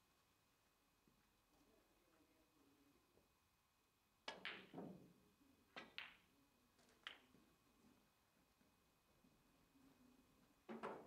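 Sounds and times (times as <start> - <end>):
snooker balls clicking: 4.2 - 5.0, 5.7 - 7.4.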